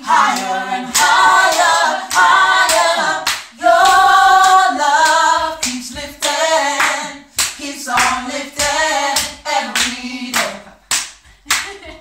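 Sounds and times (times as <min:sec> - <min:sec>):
mixed voices singing a cappella: 0:00.0 - 0:10.9
handclaps: 0:00.3 - 0:12.0.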